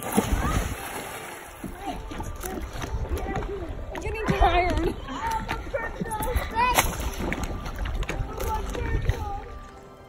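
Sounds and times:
wind buffeting microphone: 0:01.8 - 0:09.6.

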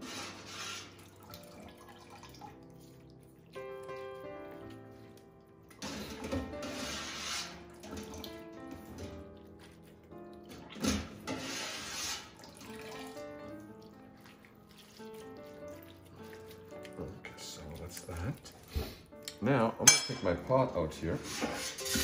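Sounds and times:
background music: 0:00.0 - 0:22.0
liquid splashing: 0:00.8 - 0:06.4, 0:07.4 - 0:19.1.

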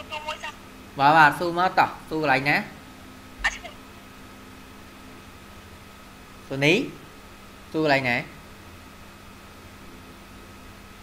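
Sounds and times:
faint steady hum: 0:00.0 - 0:11.0
person saying ah: 0:03.4 - 0:03.8.

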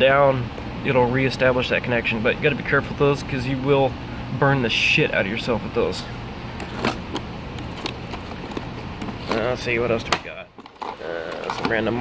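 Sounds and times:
steady low hum: 0:00.0 - 0:12.0
plastic boxes clicking: 0:06.6 - 0:12.0.

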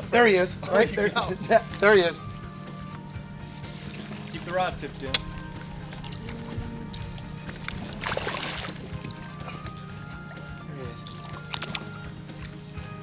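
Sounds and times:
background music with held notes: 0:00.0 - 0:13.0
fish splashing at surface: 0:03.4 - 0:13.0.

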